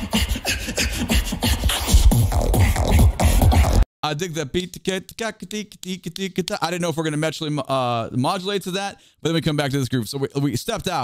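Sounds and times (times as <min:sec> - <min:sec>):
person beatboxing: 0:00.0 - 0:03.8.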